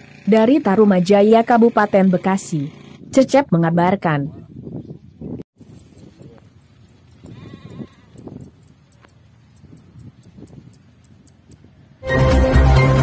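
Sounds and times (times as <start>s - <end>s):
livestock bleating: 7.2s - 8.3s.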